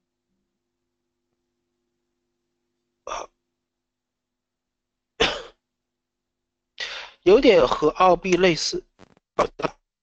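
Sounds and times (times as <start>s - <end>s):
man coughing: 3.1s - 3.4s, 5.2s - 5.6s.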